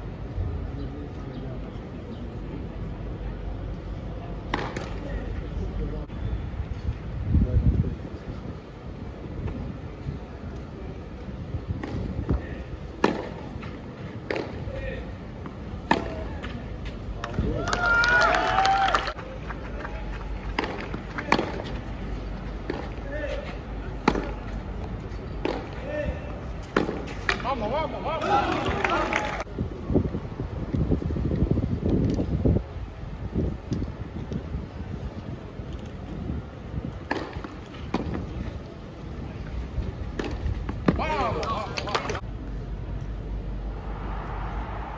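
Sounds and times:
racquet hitting tennis ball: 13.0 - 13.4, 14.2 - 14.6, 15.8 - 16.5, 20.5 - 21.8, 24.0 - 24.4, 25.4 - 25.8, 26.6 - 27.5, 37.0 - 38.3, 40.2 - 42.2
tennis racket striking ball: 26.7 - 27.5.

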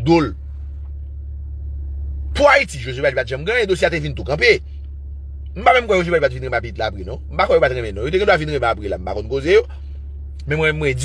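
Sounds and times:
low rumble inside car cabin: 0.0 - 11.0.

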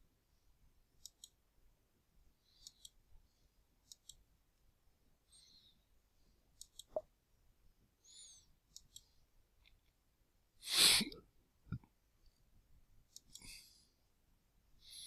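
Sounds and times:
computer mouse clicks: 1.0 - 1.4, 2.5 - 3.0, 3.8 - 4.2, 6.6 - 7.0, 8.7 - 10.0, 13.1 - 13.5.

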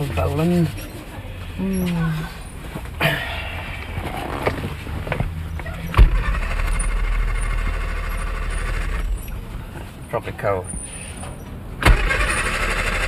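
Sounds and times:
starter motor cranking engine: 5.7 - 9.6, 11.8 - 13.0.

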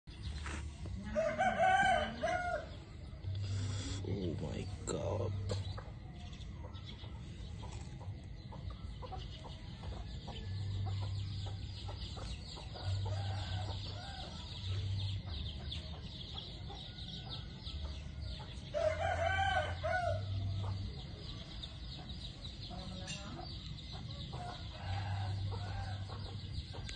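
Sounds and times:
rooster crowing: 1.0 - 2.7, 18.8 - 20.3.

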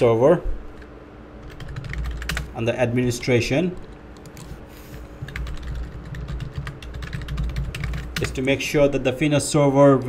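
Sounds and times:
computer keyboard typing: 0.8 - 2.6, 3.8 - 8.6.

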